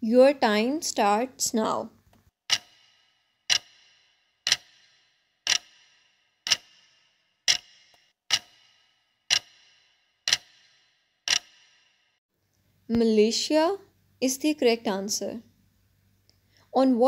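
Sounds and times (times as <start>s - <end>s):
clock ticking: 2.5s - 11.9s.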